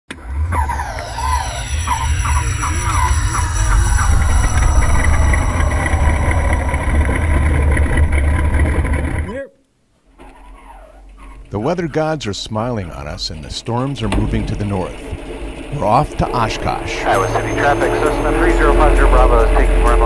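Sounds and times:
falling whine: 0.1s - 9.4s, 14.0s - 20.0s
low engine-like rumble: 0.2s - 9.3s
wavering tones: 0.2s - 9.4s, 14.8s - 20.0s.

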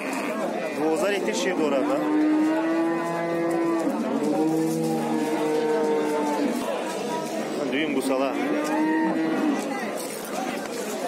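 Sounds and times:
cow mooing: 1.7s - 6.6s, 8.3s - 9.6s.

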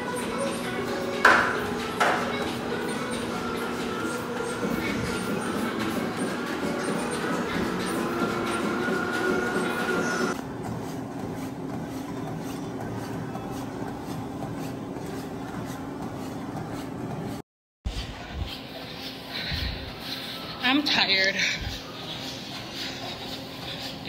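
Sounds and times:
treadmill motor whine: 0.0s - 17.4s
footsteps thudding on treadmill belt: 1.2s - 17.4s.

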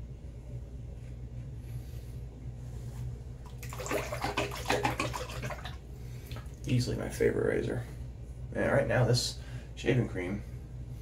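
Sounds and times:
steady low hum: 0.0s - 11.0s
tap water splashing into basin: 3.5s - 6.7s.

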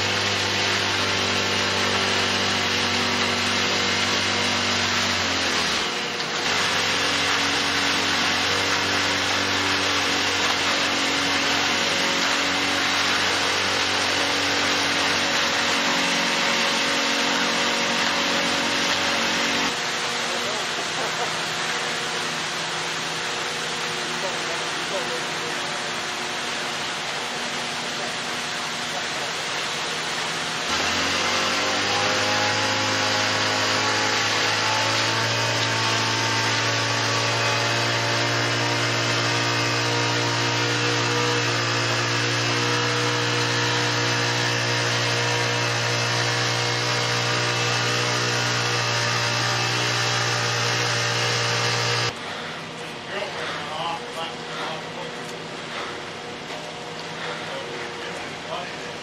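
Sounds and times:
concrete pump engine: 0.0s - 59.0s
power screed motor: 0.0s - 59.0s.

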